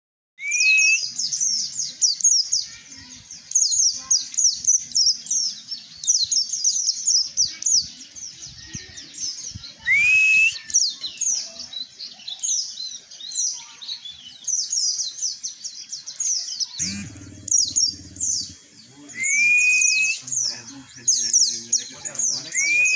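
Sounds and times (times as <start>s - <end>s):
bird twittering chirps: 0.4s - 22.9s.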